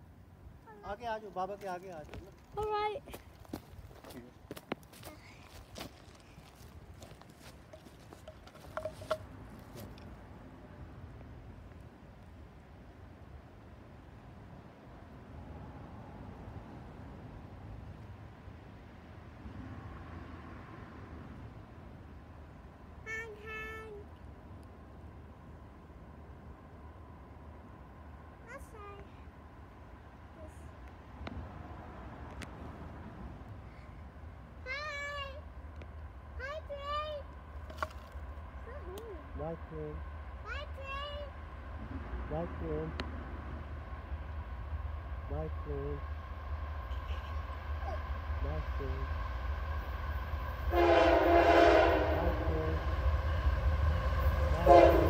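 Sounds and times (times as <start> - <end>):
footsteps crunching on track ballast: 3.1 - 10.0
child's high-pitched whine: 46.9 - 48.0.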